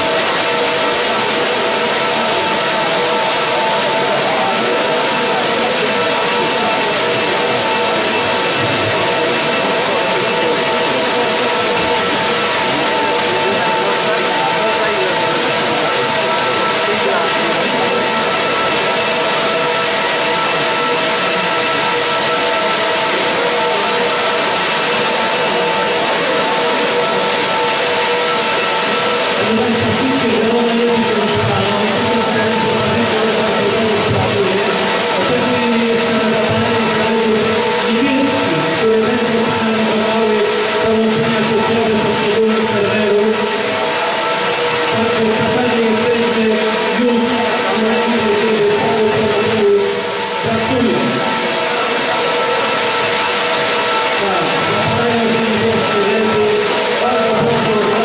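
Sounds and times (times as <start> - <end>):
cooling fans rushing: 0.0 - 58.0
fixed whining tones: 0.0 - 58.0.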